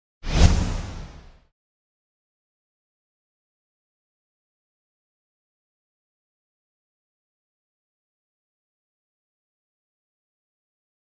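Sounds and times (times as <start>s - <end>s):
whoosh sound effect: 0.2s - 1.4s
low boom: 0.3s - 1.4s.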